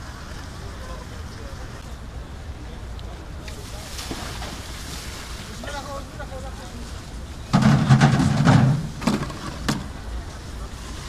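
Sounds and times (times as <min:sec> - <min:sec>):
outdoor background hum: 0:00.0 - 0:11.0.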